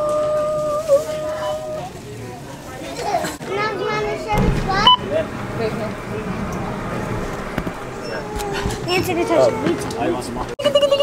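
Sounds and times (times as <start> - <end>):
toddler babbling: 8.1 - 11.0.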